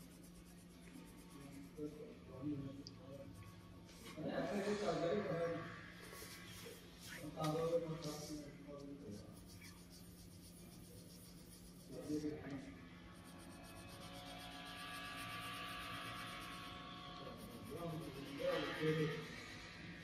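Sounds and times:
pencil scratching on paper: 0.0s - 1.8s, 6.0s - 8.3s, 9.1s - 12.3s, 13.2s - 19.3s.

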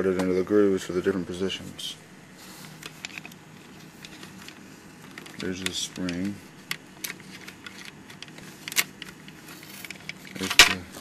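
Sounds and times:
faint low hum: 0.0s - 11.0s
plastic toy parts clicking: 4.0s - 10.8s.

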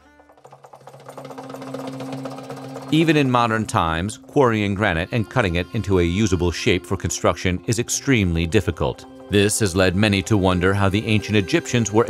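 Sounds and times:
rapid ticking clatter: 0.0s - 12.0s.

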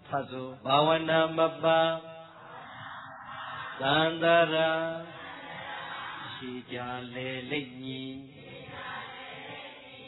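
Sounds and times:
man chanting: 0.0s - 2.3s, 6.3s - 8.4s.

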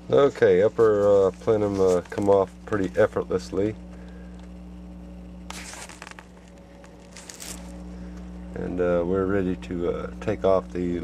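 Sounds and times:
steady low hum: 0.0s - 11.0s
rustling handling noise: 0.2s - 3.2s, 5.5s - 8.4s.

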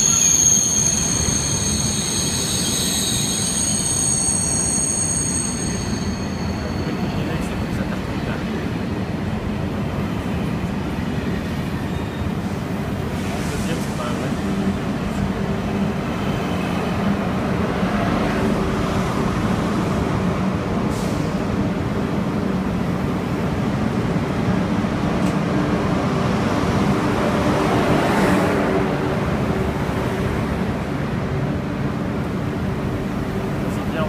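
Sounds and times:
train rolling rumble: 0.0s - 34.0s.

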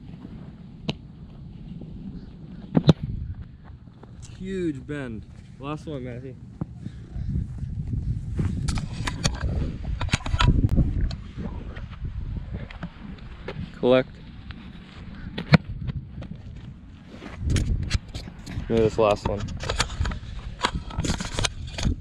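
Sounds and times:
low rumbling wind: 0.0s - 22.0s
camera handling noise: 8.6s - 11.2s, 19.2s - 22.0s.

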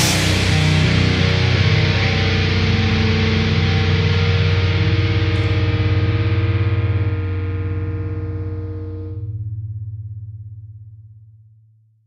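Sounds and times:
distorted electric guitar chord: 0.0s - 9.4s
bass guitar: 0.0s - 10.8s.

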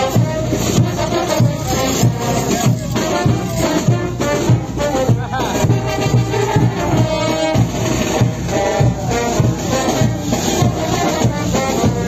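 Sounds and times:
brass band dance music: 0.0s - 12.0s
rattling percussion: 0.0s - 12.0s
steady drum beat: 0.0s - 12.0s.

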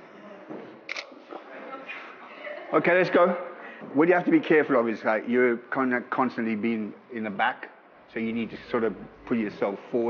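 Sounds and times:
low room chatter: 0.0s - 10.0s
camera shutter clicks: 0.9s - 1.1s.

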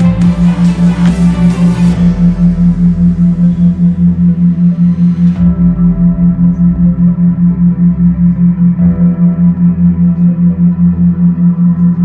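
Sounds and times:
ambient synth pad: 0.0s - 12.0s
pulsing low tone: 0.0s - 12.0s.

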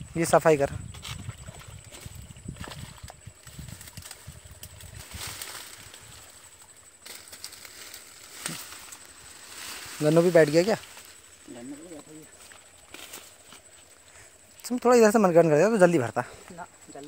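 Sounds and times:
low irregular rustle: 0.9s - 15.0s.

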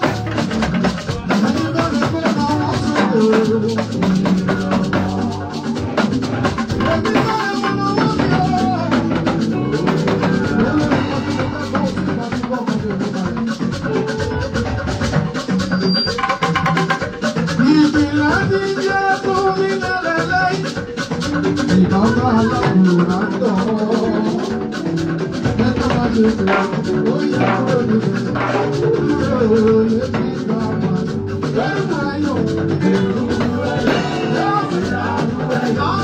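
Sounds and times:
man singing into a microphone: 0.0s - 14.6s, 17.2s - 36.0s
band playing gospel music: 0.0s - 36.0s.

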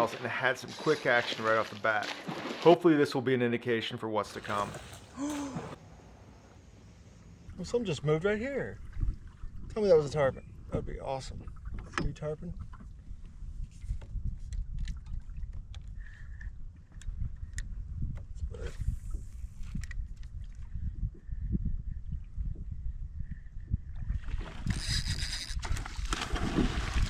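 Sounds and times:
wind buffeting microphone: 8.4s - 27.0s.

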